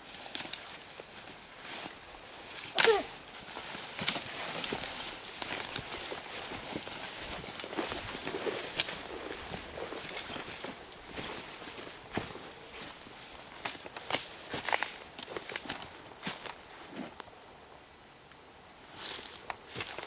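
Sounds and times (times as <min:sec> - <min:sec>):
footsteps through weeds: 0:00.0 - 0:17.2, 0:18.9 - 0:20.0
insect buzz: 0:00.0 - 0:20.0.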